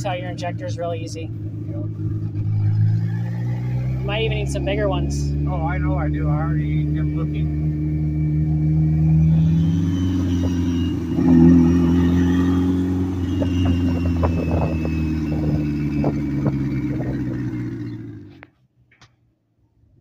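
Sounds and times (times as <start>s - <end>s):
car engine running: 0.0s - 18.5s.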